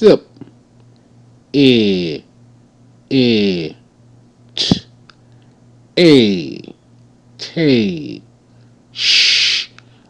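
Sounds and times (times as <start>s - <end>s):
man drawing out a syllable: 1.5s - 2.3s, 3.1s - 3.8s, 4.6s - 4.9s, 6.0s - 6.7s, 7.4s - 8.2s, 9.0s - 9.8s.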